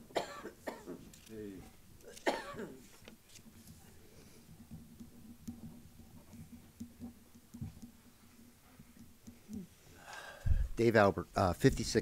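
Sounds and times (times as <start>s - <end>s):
person coughing: 0.1s - 1.0s, 2.1s - 2.8s.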